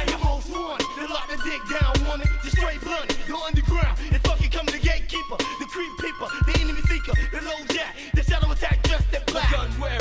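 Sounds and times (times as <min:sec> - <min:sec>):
rapping over a drum beat: 0:00.0 - 0:10.0
deep bass kicks: 0:08.2 - 0:10.0.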